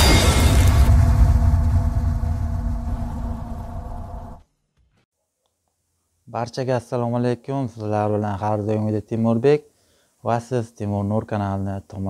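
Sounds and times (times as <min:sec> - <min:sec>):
deep rumble: 0:00.0 - 0:04.4.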